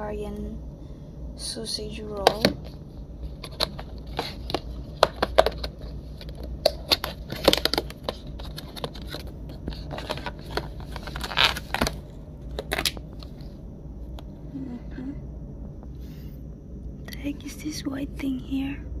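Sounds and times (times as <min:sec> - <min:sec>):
food packaging crinkling: 0:03.3 - 0:13.4.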